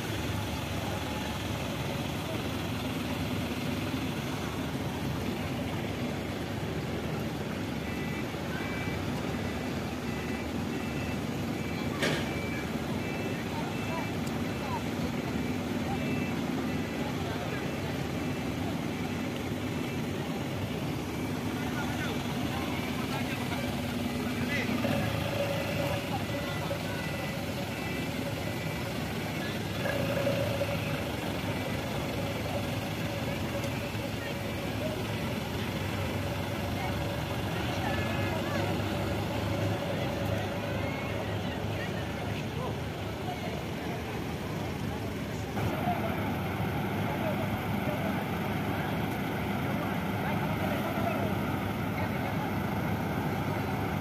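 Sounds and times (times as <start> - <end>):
truck engines running: 0.0 - 54.0.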